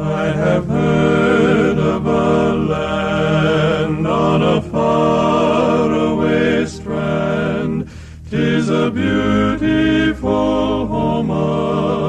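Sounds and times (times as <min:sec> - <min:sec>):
male quartet singing in harmony: 0:00.0 - 0:12.0.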